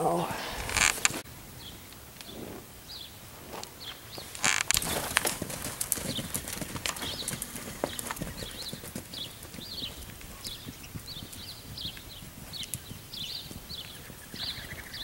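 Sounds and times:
horse hooves trotting on dirt: 3.0 - 15.0.

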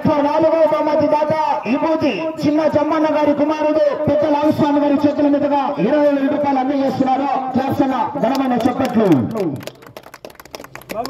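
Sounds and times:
man speaking: 0.0 - 9.6
people clapping: 8.2 - 11.0.

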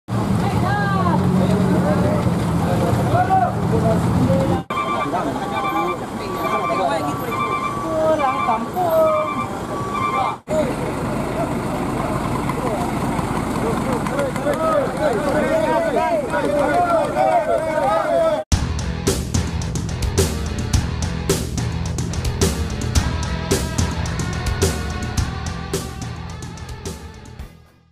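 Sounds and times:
crowd chatter: 0.4 - 18.4
people talking: 0.4 - 18.4
truck diesel engine idling: 4.6 - 16.8, 19.6 - 27.4
electronic beeping: 4.7 - 10.4.

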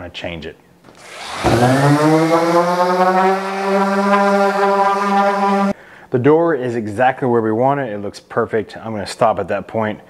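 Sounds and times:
orbit sander motor whining: 0.9 - 5.8.

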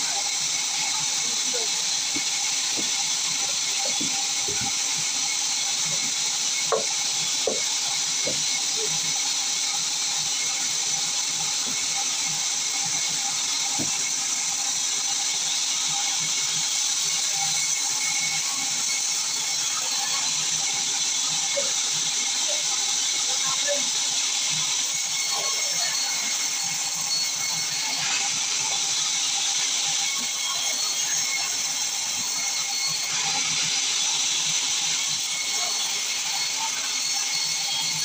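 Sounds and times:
band saw cutting log: 0.0 - 38.0
wood knocking: 3.8 - 4.7, 6.7 - 8.4.

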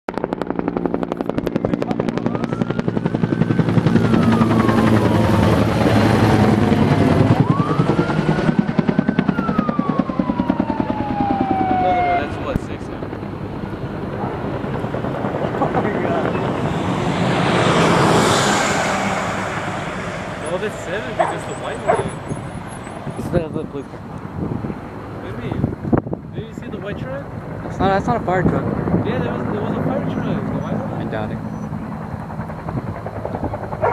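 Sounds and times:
helicopter rotor beating: 0.1 - 33.9
emergency siren wailing: 1.7 - 13.0, 14.0 - 23.8
vehicle passing close: 15.7 - 25.6.

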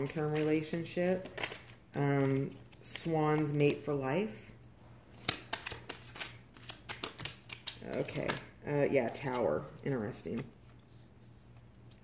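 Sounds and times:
cards being shuffled: 0.0 - 3.8, 5.1 - 12.0.

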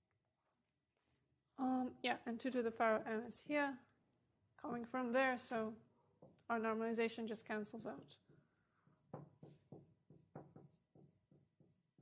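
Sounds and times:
marker writing on whiteboard: 6.1 - 6.5, 8.1 - 12.0.

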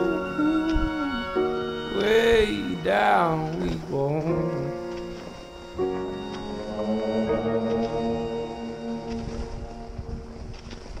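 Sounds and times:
background music: 0.0 - 11.0
wind buffeting microphone: 5.6 - 11.0.

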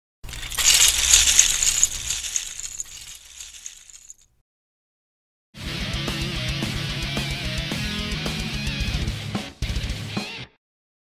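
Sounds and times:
plastic bricks clattering: 0.2 - 4.2.

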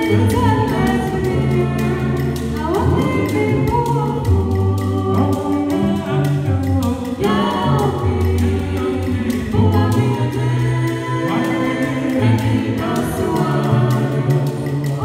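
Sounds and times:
a cappella group singing: 0.0 - 15.0
gourd shaker ticking: 0.0 - 15.0.

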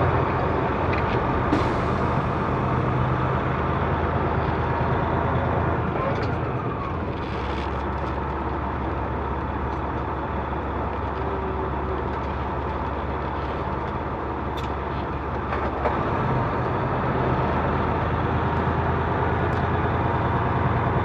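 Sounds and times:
road noise: 0.0 - 21.0
truck diesel engine: 0.0 - 21.0.

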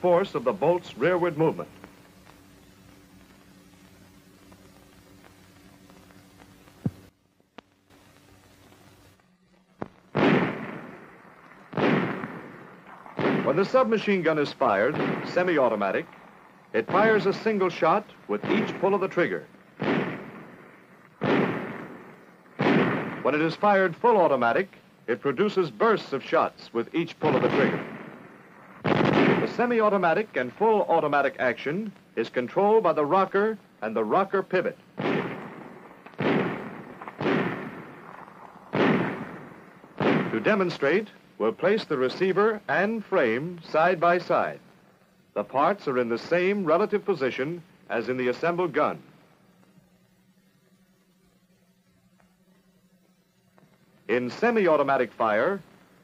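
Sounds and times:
gunshots with long echo: 10.1 - 24.6, 27.2 - 31.0, 34.6 - 41.2.

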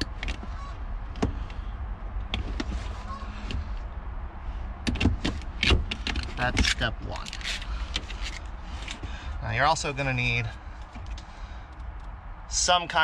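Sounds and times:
hands clicking and knocking on wiring: 0.0 - 0.4, 4.8 - 9.1.

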